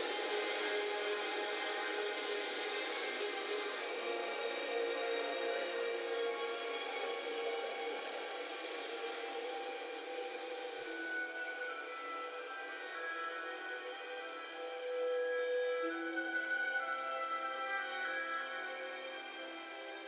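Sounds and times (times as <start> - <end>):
slow background music: 0.0 - 20.0.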